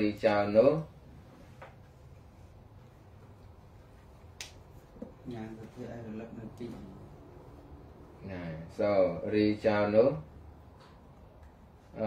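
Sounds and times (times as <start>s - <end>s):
low hum: 0.9s - 11.9s.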